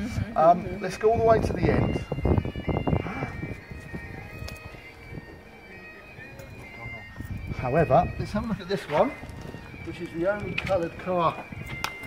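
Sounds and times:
murmur of voice: 3.0 - 7.5
faint distant music: 3.5 - 11.7.

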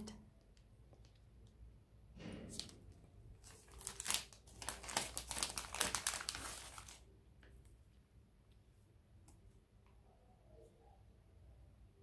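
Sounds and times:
wrapper being torn and crinkled: 3.4 - 7.1.

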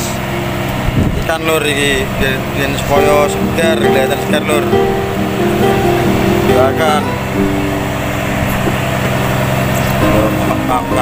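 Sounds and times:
boat engine humming: 0.0 - 11.0
music: 0.0 - 11.0
person speaking: 2.4 - 7.6.

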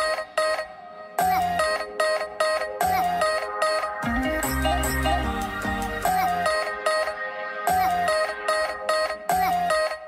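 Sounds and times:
electronic music with synth melody: 0.0 - 10.0.

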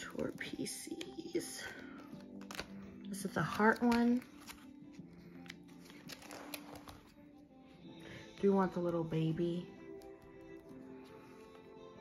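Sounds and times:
quiet background music: 0.0 - 12.0
plastic sleeves crinkling: 0.1 - 7.1.

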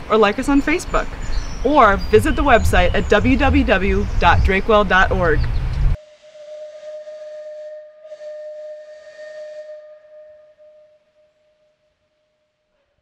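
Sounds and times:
steam whistle blowing: 6.0 - 12.0.

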